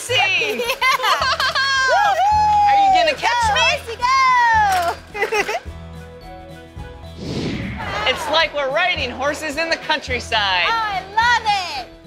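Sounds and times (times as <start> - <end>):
steady bass line: 7.2 - 9.2.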